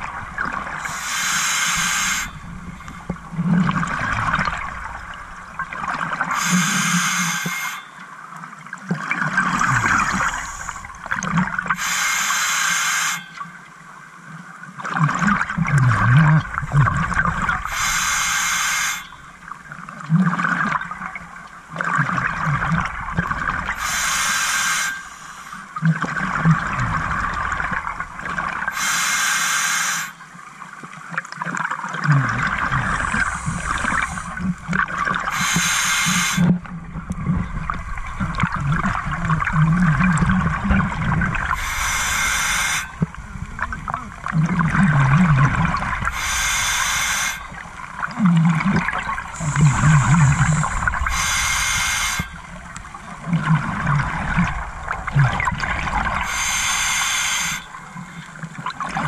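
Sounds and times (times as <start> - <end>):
regulator breath hiss: 0.8 - 2.4, 6.3 - 7.8, 9.8 - 10.9, 11.8 - 13.4, 17.6 - 19.2, 23.8 - 25.7, 28.7 - 30.2, 32.8 - 34.5, 35.3 - 36.5, 41.5 - 43.0, 46.0 - 47.6, 49.3 - 52.5, 56.2 - 58.4
gurgling exhaled bubbles: 1.9 - 6.4, 8.9 - 11.8, 14.8 - 17.8, 19.7 - 23.8, 25.8 - 28.7, 31.8 - 35.6, 36.5 - 56.9.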